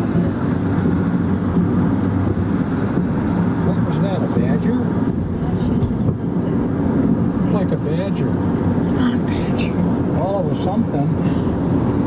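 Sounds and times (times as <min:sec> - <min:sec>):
car road and wind noise: 0:00.0 - 0:12.0.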